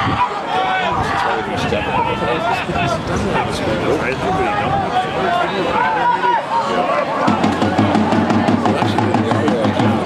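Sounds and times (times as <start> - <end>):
spectators shouting: 0.0 - 10.0.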